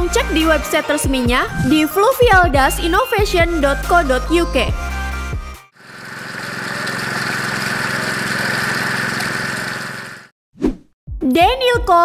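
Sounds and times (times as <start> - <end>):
background music: 0.0 - 5.7
steady buzzing noise: 5.8 - 10.3.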